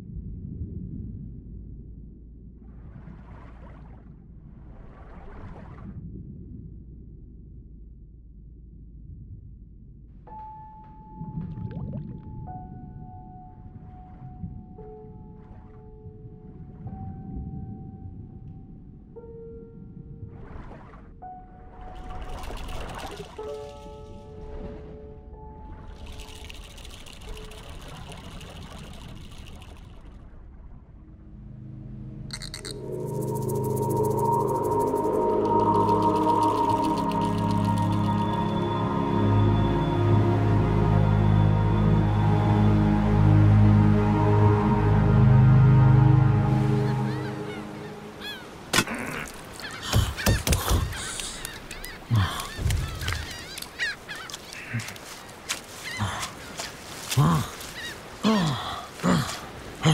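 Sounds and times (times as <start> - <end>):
music: 10.1 - 28.2, 30.9 - 48.4
ambient score low tones: 21.1 - 48.2
gulls calling: 46.3 - 59.9.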